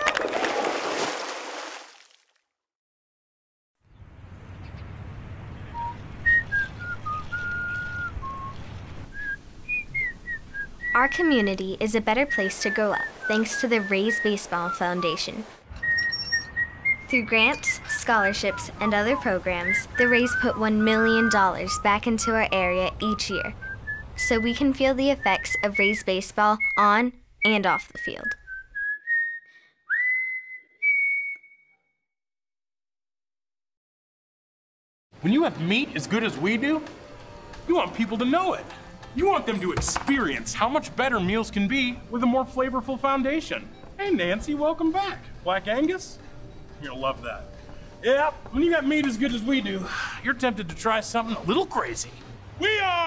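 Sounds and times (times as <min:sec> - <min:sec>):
person whistling a slow tune: 0:05.8 - 0:11.0, 0:15.8 - 0:24.6, 0:27.8 - 0:31.9.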